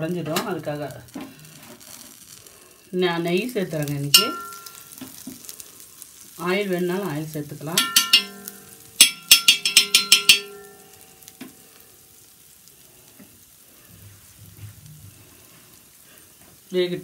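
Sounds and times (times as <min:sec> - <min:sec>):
food frying in oil: 0:00.0 - 0:17.0
spoon striking metal: 0:04.1 - 0:04.9, 0:07.8 - 0:11.0.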